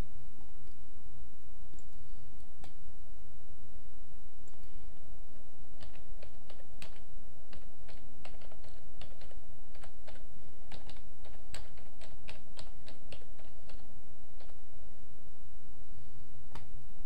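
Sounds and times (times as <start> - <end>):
steady low hum: 0.0 - 17.0
typing on computer keyboard: 5.8 - 14.6.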